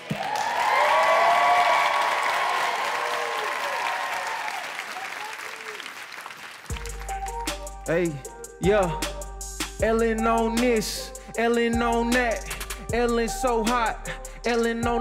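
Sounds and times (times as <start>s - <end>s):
audience applauding and cheering: 0.0s - 7.7s
hip-hop beat with deep bass: 6.8s - 15.0s.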